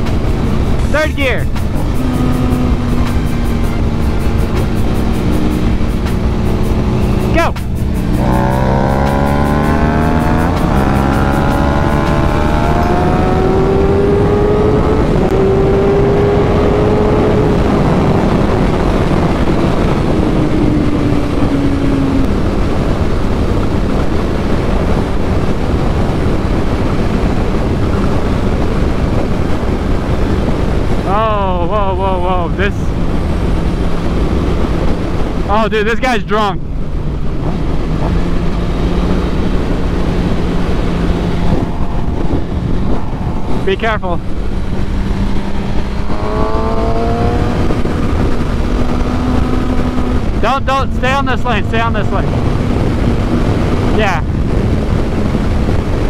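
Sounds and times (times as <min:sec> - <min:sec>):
motorcycle engine accelerating: 0:00.0 - 0:56.0
wind rush over microphone: 0:00.0 - 0:56.0.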